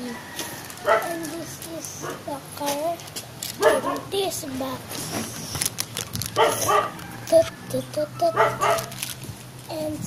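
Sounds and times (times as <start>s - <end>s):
dog barking: 0.8s - 1.2s, 3.6s - 4.1s, 6.4s - 7.0s, 8.3s - 8.9s.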